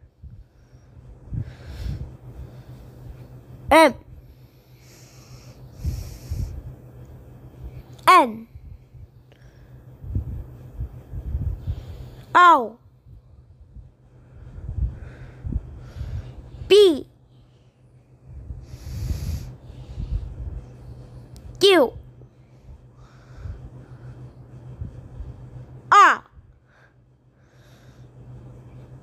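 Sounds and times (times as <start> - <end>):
low background rumble: 0.0 - 29.0
person breathing into microphone: 4.4 - 6.8, 18.4 - 20.6.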